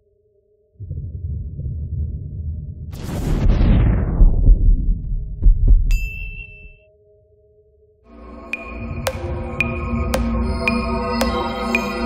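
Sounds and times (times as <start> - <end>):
low pulsing rumble: 0.8 - 5.8.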